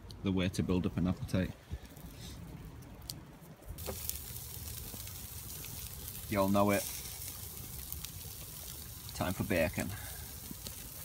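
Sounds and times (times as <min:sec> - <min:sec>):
campfire crackling: 0:00.0 - 0:11.0
bacon sizzling: 0:03.8 - 0:11.0.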